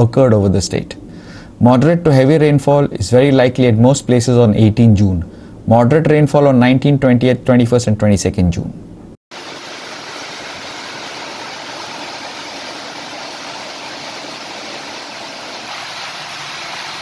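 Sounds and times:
heavy rain falling: 9.3 - 17.0.

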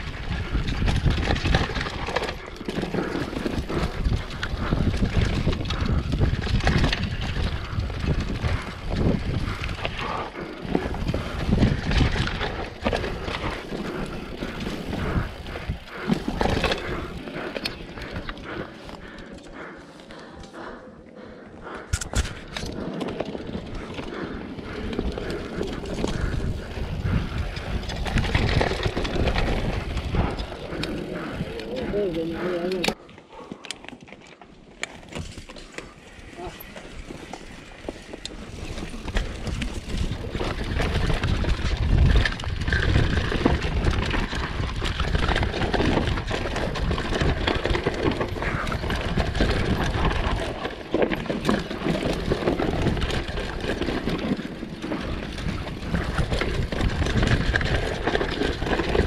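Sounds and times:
wind noise on microphone: 0.0 - 19.2, 21.6 - 33.0, 36.4 - 59.0
bike chain and frame rattling: 0.0 - 20.2, 21.9 - 33.0, 33.7 - 59.0
tyres on loose dirt: 0.0 - 59.0.

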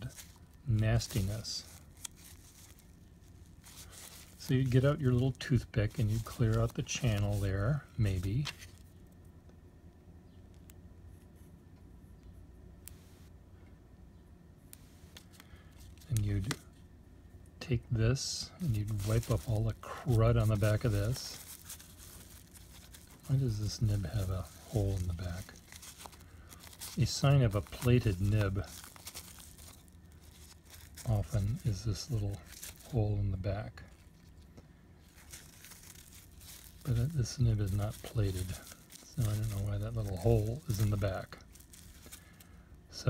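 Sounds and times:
paper towel rustling and crinkling: 0.0 - 9.0, 18.2 - 43.0
low room hum: 0.0 - 43.0.

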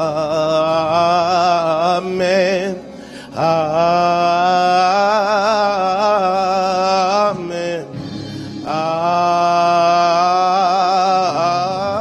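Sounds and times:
man singing gospel: 0.0 - 12.0.

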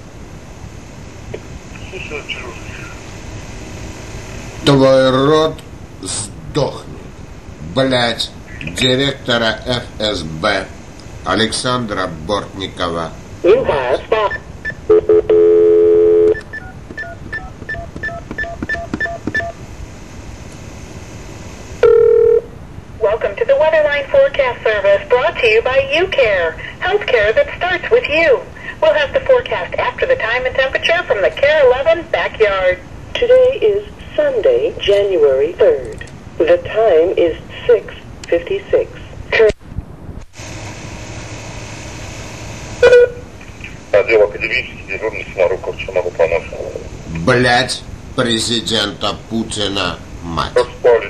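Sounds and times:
steady line tone: 0.0 - 26.2, 40.3 - 51.0
touch-tone digits dialled: 14.3 - 19.6
steady-pitched tone: 40.4 - 47.8.

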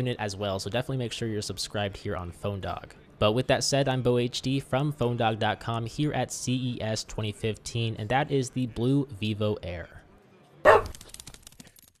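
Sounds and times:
dog bark: 10.6 - 11.0.

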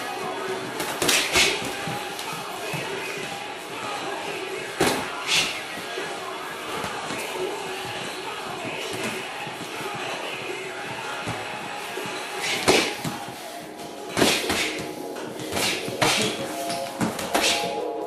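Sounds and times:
music playing: 0.0 - 18.0
boxing glove punches: 0.8 - 2.9, 12.4 - 13.3, 14.1 - 16.4.

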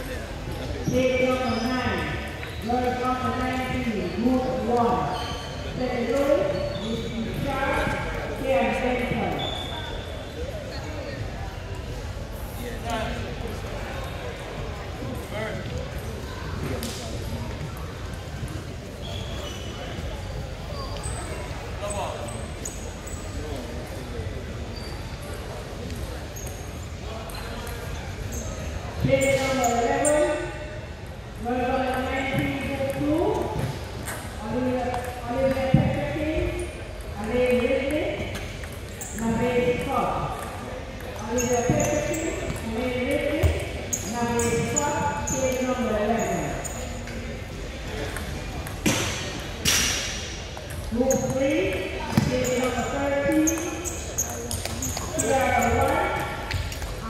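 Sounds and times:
voices in large hall: 0.0 - 57.0
people talking: 31.4 - 33.7, 34.4 - 38.4, 39.0 - 49.9, 50.8 - 57.0.

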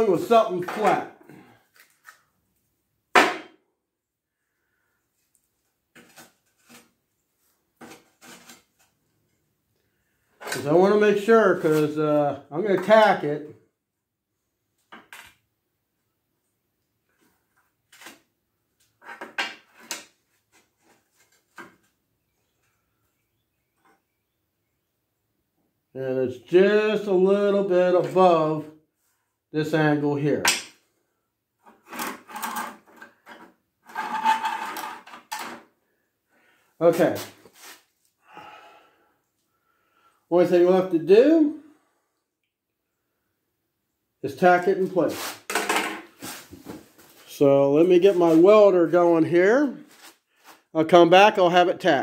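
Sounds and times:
man saying okay: 36.8 - 37.3.

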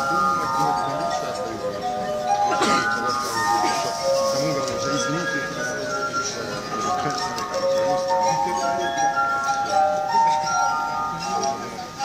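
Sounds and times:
faint murmur of voices: 0.0 - 12.0
glass harp melody: 0.0 - 12.0.

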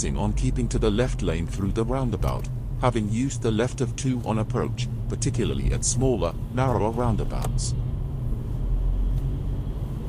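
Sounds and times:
car engine low rumble: 0.0 - 10.0.

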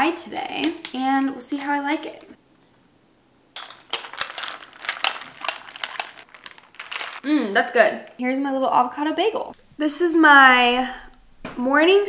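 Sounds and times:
straw stirring ice in glass: 3.6 - 7.2.

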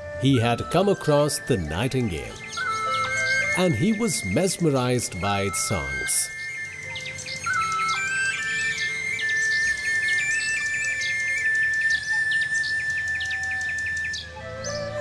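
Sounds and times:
soft background music: 0.0 - 15.0
cartoon bird chirps and whistles: 5.6 - 14.3.

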